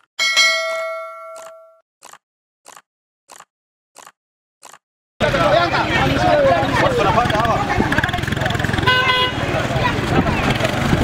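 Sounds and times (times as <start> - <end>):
notification bell ding: 0.2 - 1.8.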